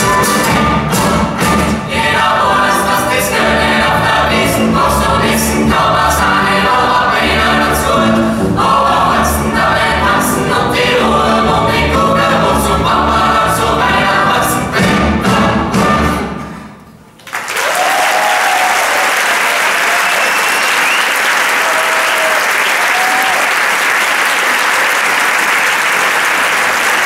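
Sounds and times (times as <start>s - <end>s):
choir singing: 0.0s - 16.7s
big band playing: 0.0s - 17.1s.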